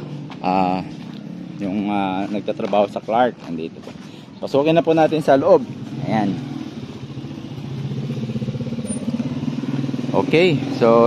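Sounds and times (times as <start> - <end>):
small vehicle engine running: 0.0 - 11.0.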